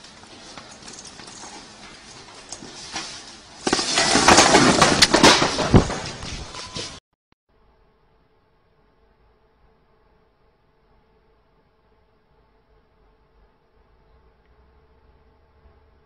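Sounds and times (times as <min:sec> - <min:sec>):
wire bin of balls rattling: 0:00.0 - 0:06.6
metal frame clattering: 0:00.0 - 0:07.0
faint steady hum: 0:07.5 - 0:16.0.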